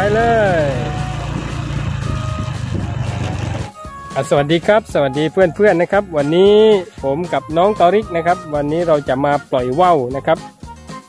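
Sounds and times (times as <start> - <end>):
motorcycle engine running: 0.0 - 5.0
wind noise: 0.7 - 3.7.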